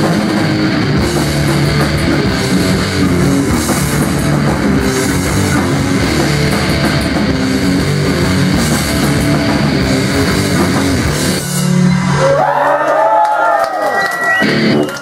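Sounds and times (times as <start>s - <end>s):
drum kit: 0.0s - 12.5s, 14.4s - 15.0s
bass guitar: 0.0s - 12.7s, 14.4s - 15.0s
distorted electric guitars: 0.0s - 12.8s, 14.0s - 15.0s.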